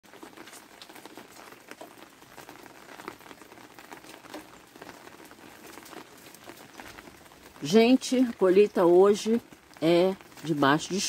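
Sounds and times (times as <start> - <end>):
rain tapping on umbrella: 0.0 - 11.0.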